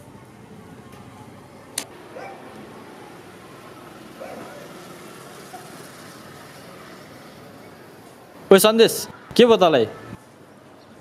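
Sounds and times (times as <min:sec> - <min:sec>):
faint distant voices: 0:00.0 - 0:11.0
outdoor background noise: 0:00.0 - 0:11.0.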